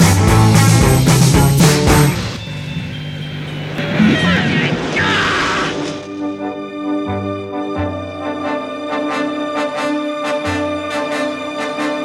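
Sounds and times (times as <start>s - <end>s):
noisy sound effects: 2.2s - 6.2s
voices: 3.8s - 6.0s.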